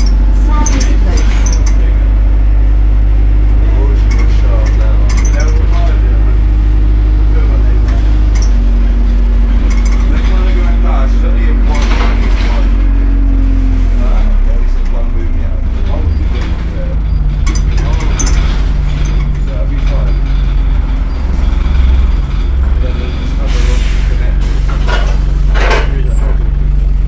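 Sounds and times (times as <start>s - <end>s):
bus engine and drivetrain hum: 0.0s - 27.0s.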